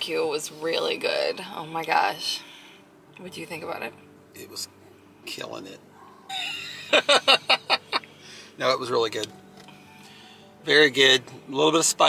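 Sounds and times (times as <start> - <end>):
person laughing: 6.3 - 8.1.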